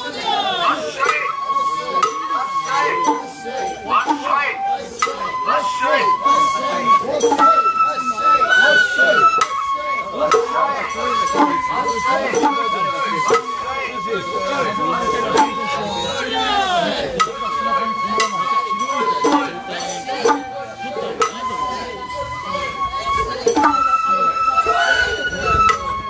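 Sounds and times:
bamboo flute melody: 0.0s - 26.0s
percussion strikes: 0.0s - 26.0s.

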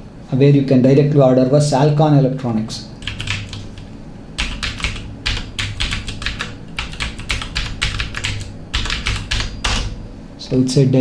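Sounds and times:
typing on computer keyboard: 3.0s - 3.8s, 4.4s - 10.0s.

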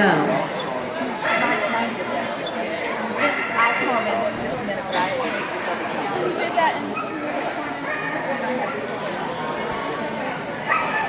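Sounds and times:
murmur of voices: 0.0s - 11.0s
dog barking: 3.2s - 4.1s, 10.7s - 11.0s.

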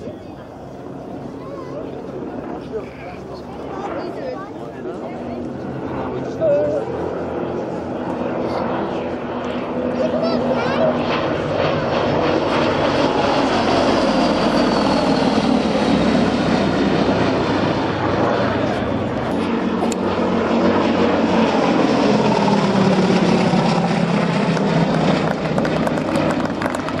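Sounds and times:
radial aircraft engine in flight: 0.0s - 27.0s.

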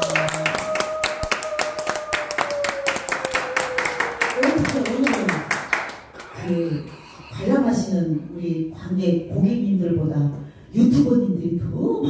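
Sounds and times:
audience clapping in rhythm: 0.0s - 7.0s.

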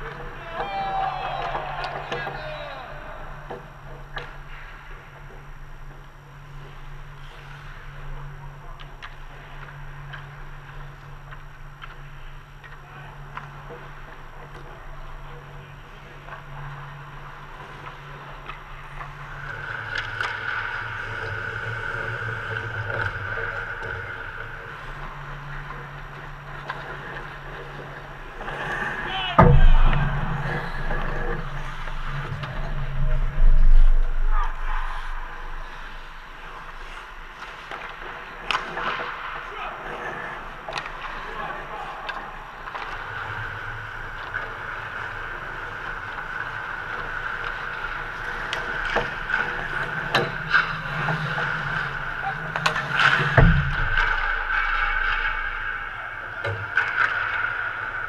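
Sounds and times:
steady rink hum: 0.0s - 58.0s
hockey sticks and puck clicking: 8.8s - 15.5s, 16.2s - 24.2s, 36.7s - 55.6s, 56.2s - 58.0s
heavy thumps with low rumble: 29.4s - 36.4s, 53.3s - 54.7s.

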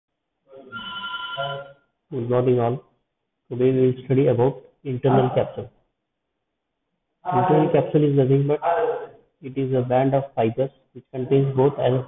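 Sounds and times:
high electronic tone: 0.6s - 1.8s.

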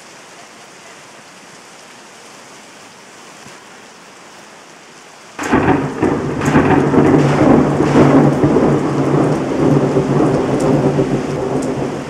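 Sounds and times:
steady rain: 0.0s - 12.0s
loud thunder rumble: 5.4s - 12.0s
sharp thunder cracks: 5.4s - 12.0s.

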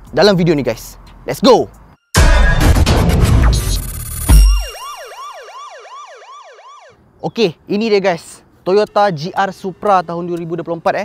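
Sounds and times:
heavy hit: 2.2s - 4.8s
glitchy crackling burst: 2.6s - 4.4s
swooping siren-like synth tone: 3.4s - 7.0s.

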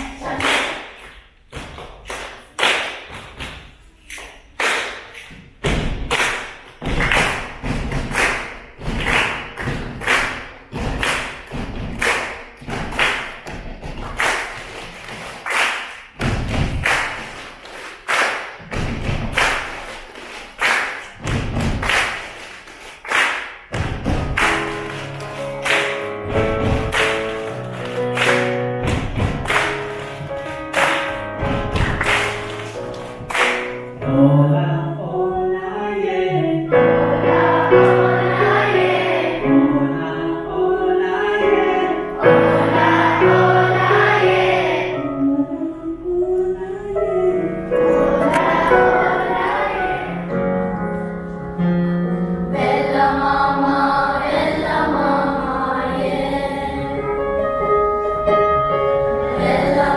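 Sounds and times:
hand claps and thumps: 20.6s - 22.3s, 26.5s - 33.7s
digital piano chords: 23.9s - 59.9s.

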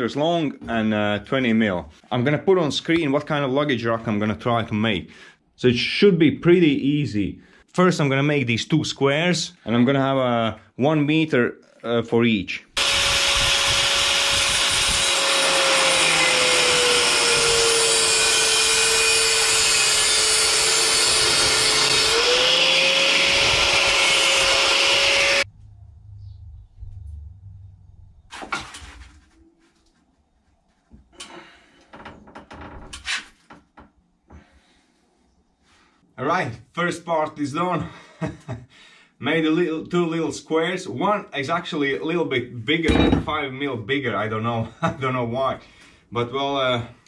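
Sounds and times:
angle grinder cutting metal tube: 12.8s - 25.5s.

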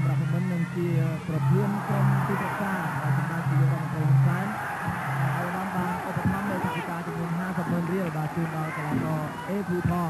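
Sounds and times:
crowd shouting: 1.5s - 10.0s.

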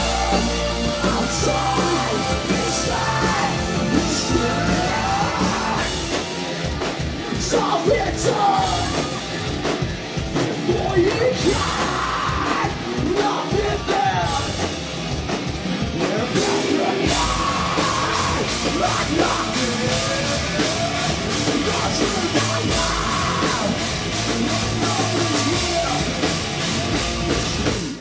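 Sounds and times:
person singing: 0.0s - 6.4s, 7.2s - 9.4s, 10.5s - 14.5s, 16.0s - 26.3s
rock band playing live: 0.0s - 28.0s.

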